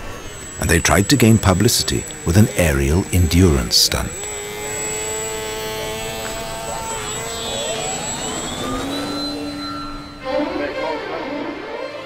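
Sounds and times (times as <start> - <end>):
model airplane motor and propeller: 0.0 - 11.6.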